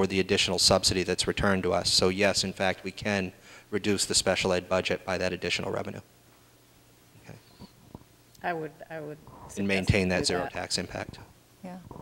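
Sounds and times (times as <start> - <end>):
person saying okay: 9.6 - 10.6.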